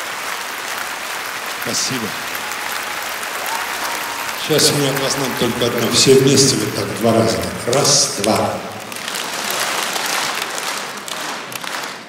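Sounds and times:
audience applause: 0:00.0 - 0:12.0.

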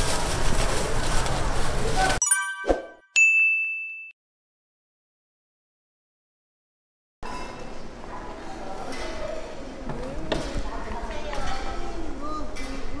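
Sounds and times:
sparkling high jingle: 0:02.2 - 0:04.1
bright ding: 0:02.2 - 0:04.2.

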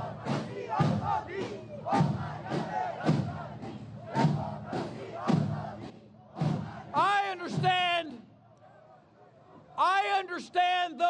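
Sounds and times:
crowd chanting in unison: 0:00.0 - 0:07.7
marching bass and snare drums: 0:00.0 - 0:08.1.

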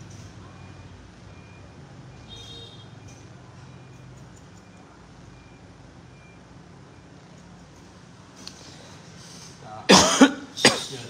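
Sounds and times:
person coughing: 0:09.9 - 0:11.0.

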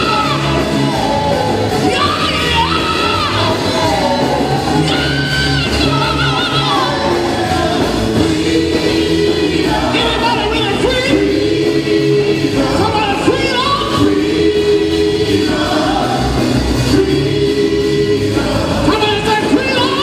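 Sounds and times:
gospel group singing in harmony: 0:00.0 - 0:20.0.

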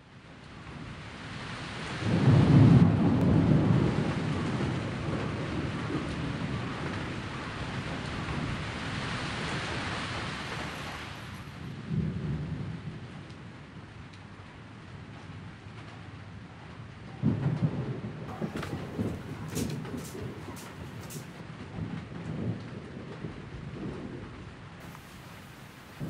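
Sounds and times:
steady rain falling: 0:00.0 - 0:26.0
thunder rumbling: 0:02.0 - 0:13.1, 0:17.2 - 0:26.0.

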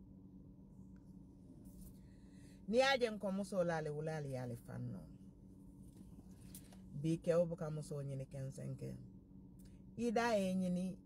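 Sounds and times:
low hum of car cabin: 0:00.0 - 0:11.0.

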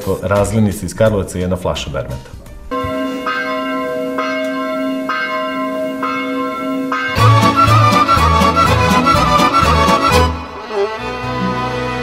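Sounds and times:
church bell tolling: 0:02.7 - 0:10.6.

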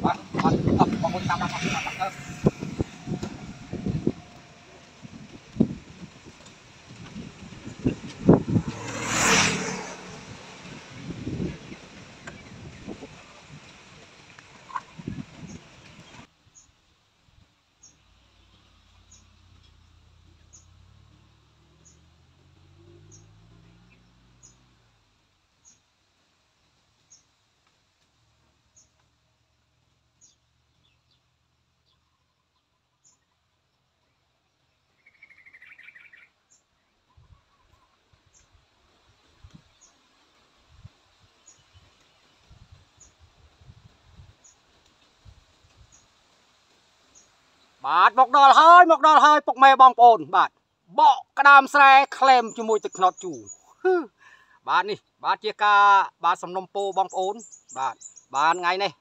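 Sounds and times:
wind rushing on microphone: 0:00.0 - 0:16.3, 0:40.6 - 0:44.5.

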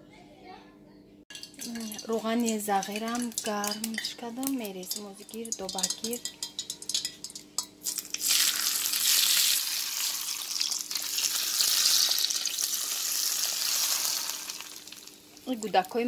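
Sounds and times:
light clinks: 0:01.3 - 0:08.2
hot oil sizzling: 0:01.3 - 0:16.0.

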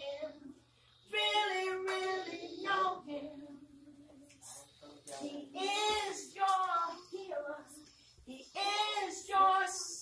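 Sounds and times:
woman singing a hymn: 0:00.0 - 0:04.6, 0:05.2 - 0:10.0.

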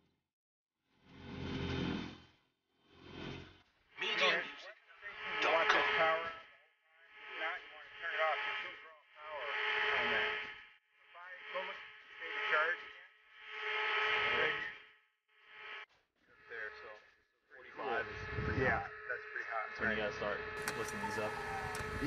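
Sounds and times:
person talking over radio: 0:04.0 - 0:06.5, 0:07.3 - 0:10.3, 0:11.2 - 0:13.0, 0:17.6 - 0:22.0.

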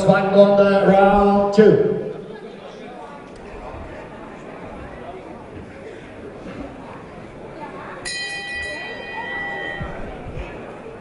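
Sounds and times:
boxing ring bell: 0:08.0 - 0:10.2.

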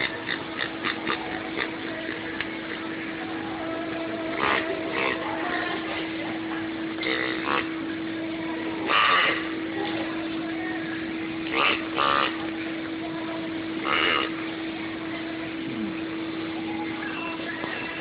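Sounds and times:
low electrical hum: 0:00.0 - 0:18.0
person's voice: 0:15.6 - 0:16.0.

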